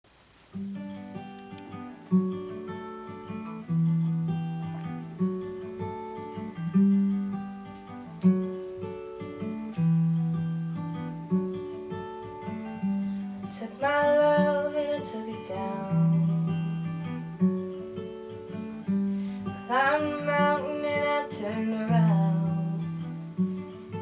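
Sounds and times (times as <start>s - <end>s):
acoustic guitar chords: 0.1s - 24.0s.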